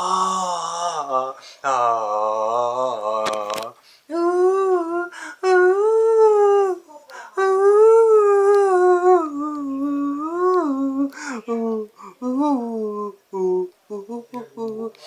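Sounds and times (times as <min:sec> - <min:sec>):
man singing unaccompanied: 0:00.0 - 0:15.0.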